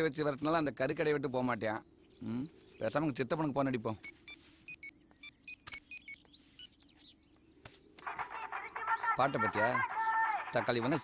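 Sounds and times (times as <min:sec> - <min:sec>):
phone keypad beeps: 0:04.0 - 0:06.8.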